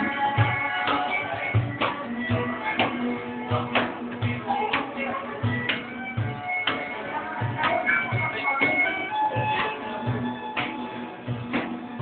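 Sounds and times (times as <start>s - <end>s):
acoustic guitar: 0.0s - 12.0s
cajon beat: 0.0s - 12.0s
held melody notes: 0.0s - 12.0s.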